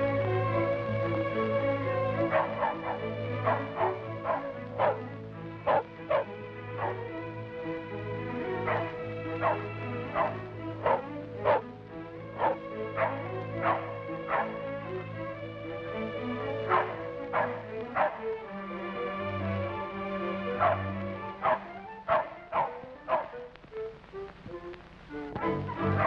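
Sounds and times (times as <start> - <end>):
background music with held tones: 0.0 - 26.0
small dog yapping: 2.2 - 5.0, 5.7 - 7.0, 8.6 - 11.6, 12.4 - 14.6, 16.6 - 18.2, 20.6 - 23.4.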